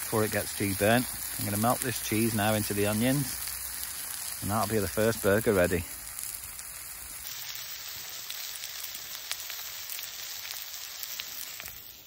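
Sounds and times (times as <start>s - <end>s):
food sizzling in a frying pan: 0.0s - 12.0s.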